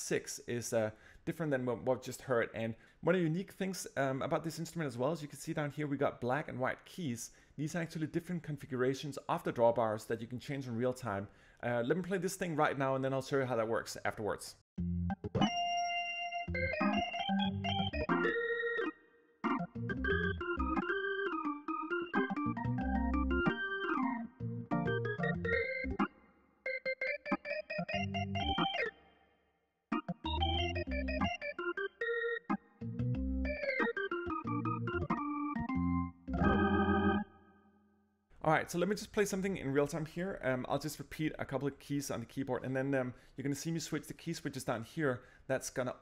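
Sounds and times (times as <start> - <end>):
organ playing chords: 14.8 - 29.1, 29.9 - 37.6.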